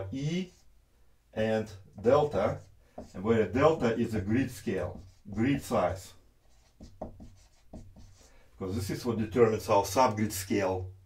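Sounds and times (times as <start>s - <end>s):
marker scratching on whiteboard: 0.1s - 0.7s, 1.4s - 9.4s.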